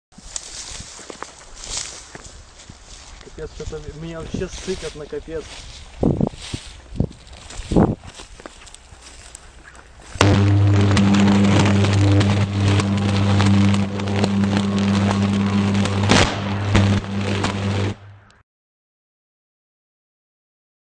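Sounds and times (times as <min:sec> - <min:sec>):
electric arc crackling and snapping: 0:10.2 - 0:18.2
loud electric crack: 0:10.2 - 0:18.3
deep electric hum: 0:10.2 - 0:18.4.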